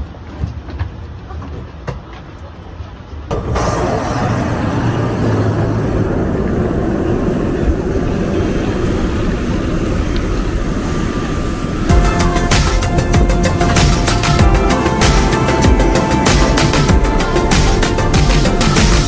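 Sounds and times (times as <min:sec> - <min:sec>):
airport apron rush and rumble: 0:03.3 - 0:19.0
faint steady whine: 0:04.0 - 0:12.5
music: 0:11.9 - 0:19.0.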